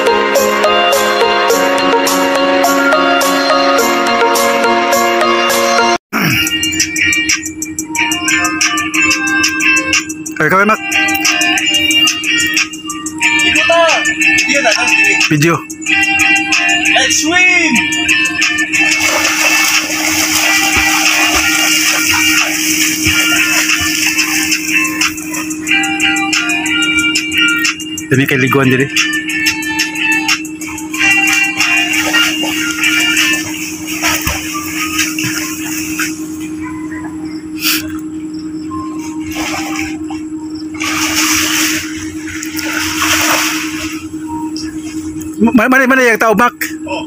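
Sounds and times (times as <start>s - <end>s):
faint music: 6.2s - 47.0s
steady low hum: 6.2s - 47.0s
water splashing from swimming: 18.8s - 25.5s, 30.9s - 36.3s, 39.2s - 44.1s.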